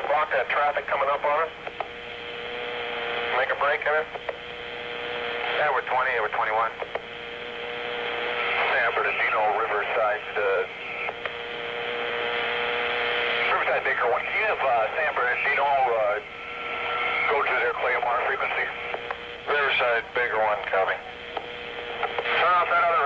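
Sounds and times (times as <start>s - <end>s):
steady hum and hiss: 0.0s - 23.0s.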